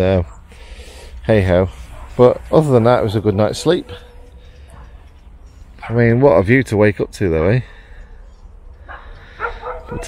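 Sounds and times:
dog yapping: 0:08.9 - 0:10.0.

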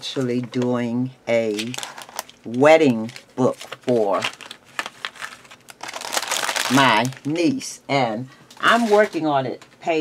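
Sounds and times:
paper crinkling and rustling: 0:01.5 - 0:07.4.

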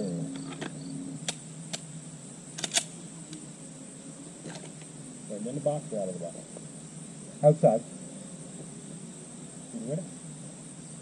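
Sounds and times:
high insect trill: 0:00.0 - 0:11.0
handgun clicking: 0:02.6 - 0:02.9.

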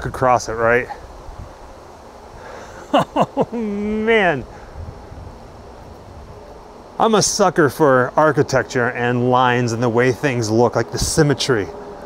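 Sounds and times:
outdoor background hiss: 0:00.0 - 0:12.0
wind buffeting microphone: 0:00.0 - 0:12.0.

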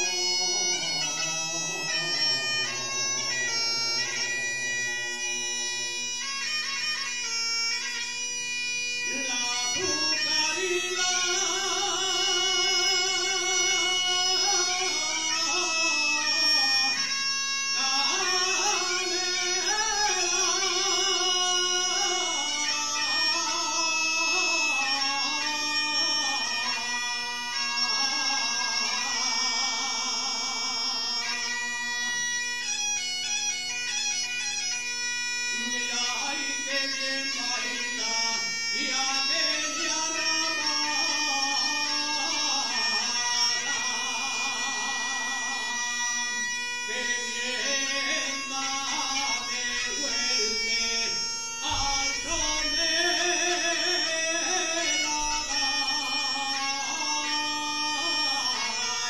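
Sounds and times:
man singing: 0:00.0 - 0:32.3, 0:35.5 - 0:59.0
bagpipe with drone: 0:00.0 - 0:59.0.

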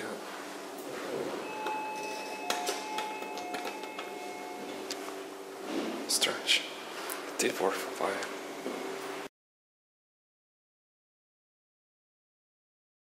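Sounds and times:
elevator machinery hum: 0:00.0 - 0:09.3
faint elevator whine: 0:00.0 - 0:09.3.

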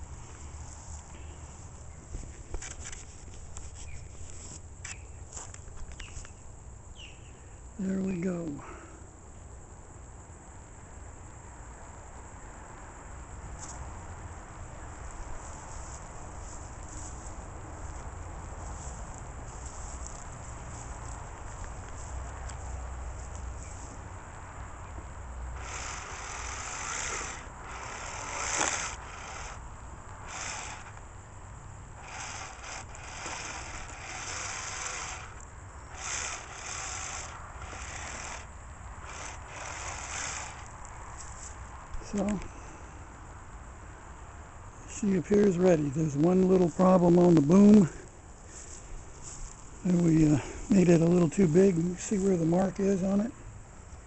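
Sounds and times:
rustles and scrapes: 0:00.0 - 0:06.3, 0:15.4 - 0:24.0, 0:32.0 - 0:42.4, 0:48.4 - 0:50.2.

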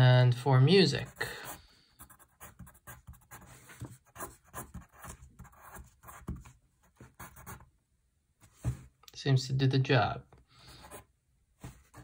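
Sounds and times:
pencil writing on paper: 0:01.1 - 0:07.6.

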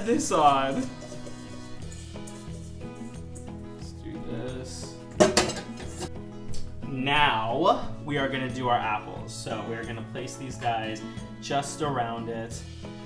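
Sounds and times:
background music: 0:00.0 - 0:13.0
metal bowl clattering against pan: 0:00.7 - 0:03.5, 0:05.1 - 0:06.1.

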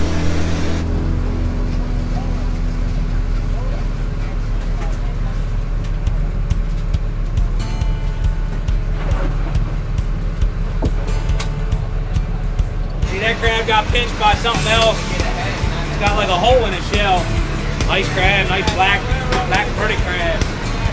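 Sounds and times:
boat engine running: 0:00.0 - 0:20.9
music: 0:00.0 - 0:20.9.

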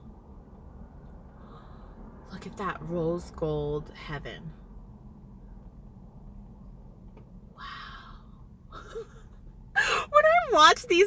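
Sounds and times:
low background rumble: 0:00.0 - 0:11.0
woman's voice: 0:02.3 - 0:04.5, 0:09.8 - 0:11.0
woman exhaling: 0:07.6 - 0:08.4.

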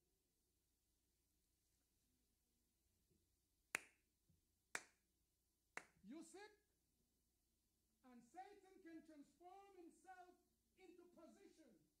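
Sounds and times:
man snapping fingers: 0:03.8 - 0:04.0, 0:04.8 - 0:05.0, 0:05.8 - 0:06.0.

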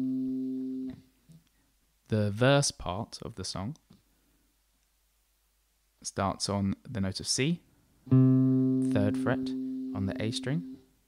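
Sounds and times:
low electric guitar note: 0:08.1 - 0:10.8.

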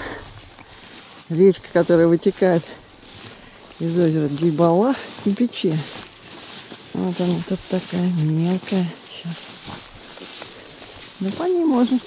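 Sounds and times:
faint outdoor hiss: 0:00.0 - 0:12.0
woman's voice: 0:06.9 - 0:09.5, 0:11.2 - 0:12.0.

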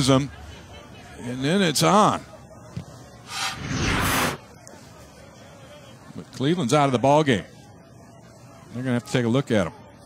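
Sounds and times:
stadium crowd background: 0:00.0 - 0:10.0
transition whoosh: 0:03.3 - 0:04.4.

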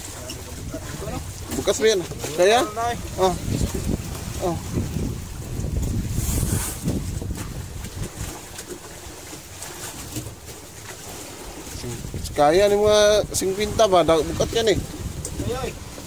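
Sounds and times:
wind buffeting microphone: 0:00.0 - 0:08.6, 0:11.1 - 0:16.0
boat engine rumble: 0:00.0 - 0:16.0.

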